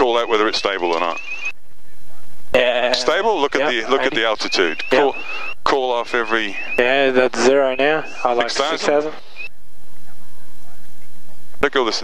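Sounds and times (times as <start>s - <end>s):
man speaking: 0.0s - 1.2s, 2.6s - 9.2s, 11.6s - 12.0s
thin steady tones: 0.0s - 11.5s
intercom hiss: 2.6s - 9.4s.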